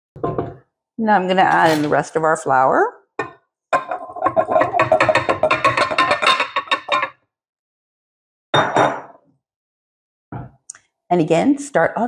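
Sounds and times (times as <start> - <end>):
glass bowl clinking on metal bowl: 3.2 - 7.1, 8.6 - 9.1.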